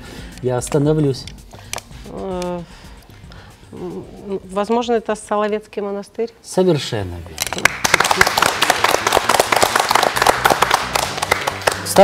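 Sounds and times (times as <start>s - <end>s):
crowd applauding: 7.5s - 12.0s.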